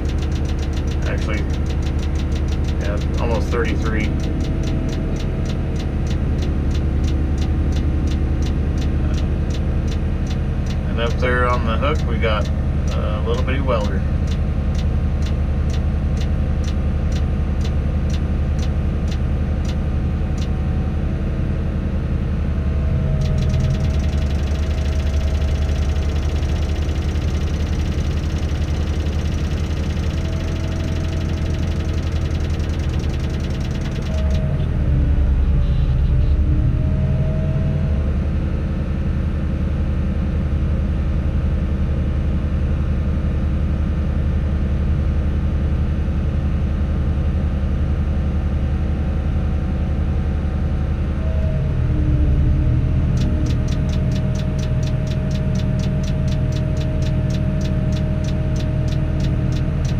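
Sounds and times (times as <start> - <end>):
fast fine ticking: 0.0 - 20.5, 23.2 - 34.5, 53.2 - 59.9
diesel engine running: 0.0 - 59.9.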